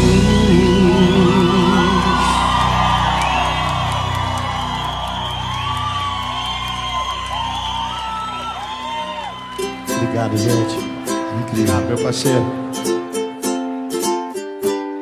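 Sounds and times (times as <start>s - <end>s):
live band playing: 0.0s - 6.4s, 7.0s - 15.0s
audience whooping and cheering: 0.8s - 11.8s.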